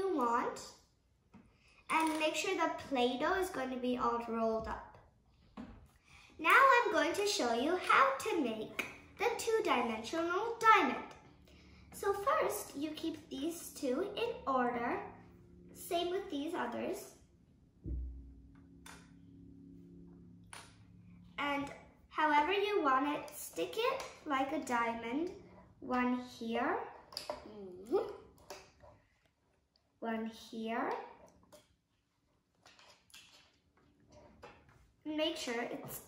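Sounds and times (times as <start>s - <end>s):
faint low hum: 1.5s - 28.4s.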